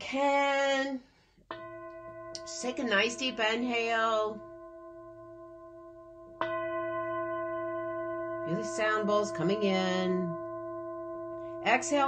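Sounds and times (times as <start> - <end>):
singing bowl ringing: 1.5 - 12.0.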